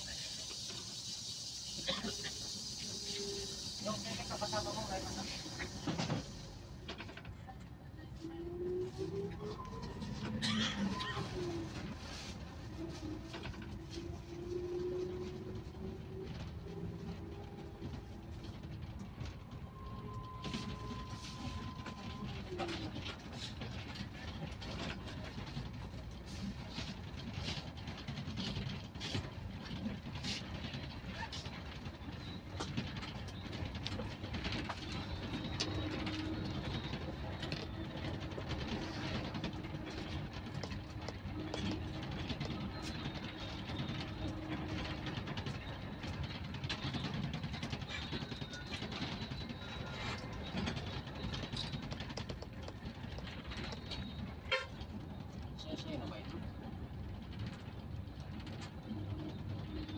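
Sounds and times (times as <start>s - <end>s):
vehicle engine and road noise: 5.4s - 59.9s.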